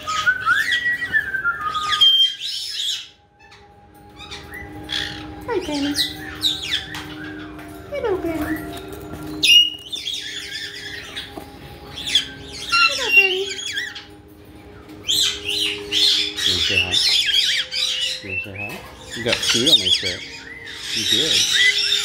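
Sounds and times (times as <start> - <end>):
parrot calls: 0.0 - 22.0.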